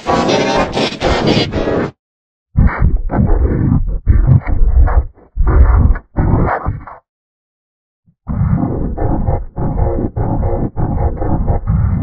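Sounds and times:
distorted bass-heavy audio: 2.6 - 7.0, 8.3 - 12.0.

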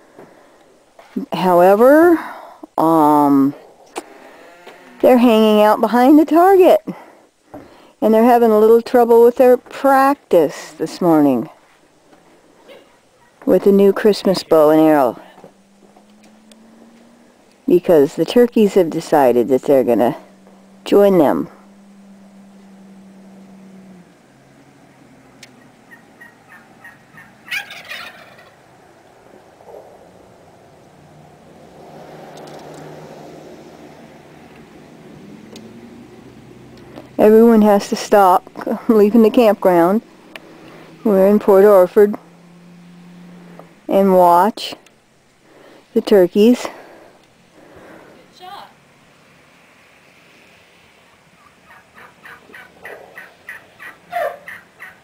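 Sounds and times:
turkeys calling: 14.4 - 17.7, 20.2 - 30.4, 51.0 - 55.0
turkey gobble: 25.6 - 28.6, 51.4 - 55.0.

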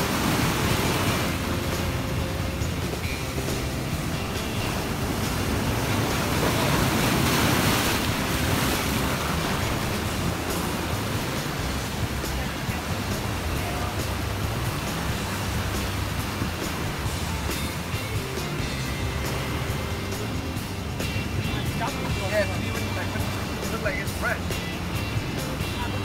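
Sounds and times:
music: 0.0 - 26.0
surf washing against rocks: 0.0 - 26.0.

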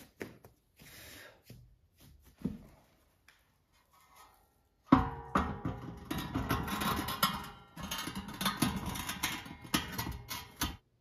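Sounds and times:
metal stove door knocking and scraping: 4.9 - 10.8.

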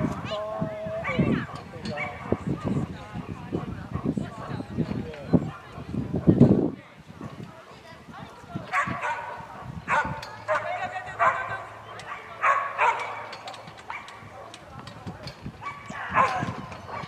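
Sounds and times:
dog barking: 2.0 - 2.4, 8.7 - 14.6, 15.6 - 17.0.

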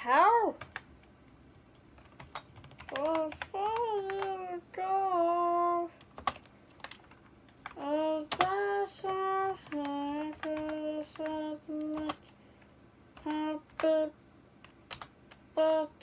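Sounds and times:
computer keyboard typing clicks: 0.6 - 4.4, 6.0 - 12.3, 13.2 - 13.9, 14.6 - 15.4
boy singing wordless phrases: 2.8 - 6.0, 7.8 - 12.3, 13.2 - 14.2, 15.5 - 16.0.

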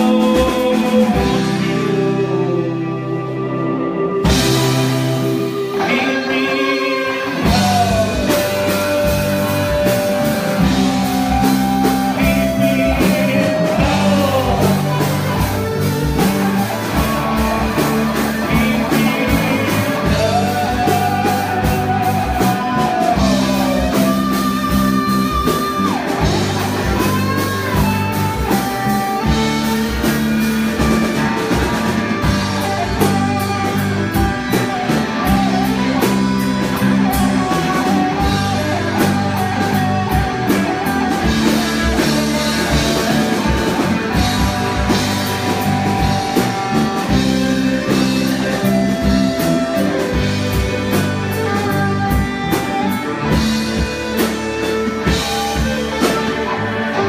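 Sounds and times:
drum kit: 0.0 - 57.0
electric guitars: 0.0 - 57.0.

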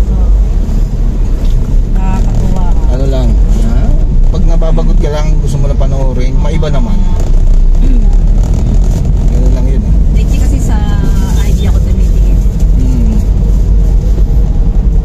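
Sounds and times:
car engine and tyres rumble: 0.0 - 15.0.

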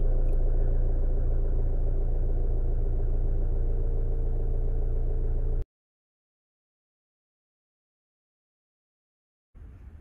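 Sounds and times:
loud low rumble: 0.0 - 5.6.

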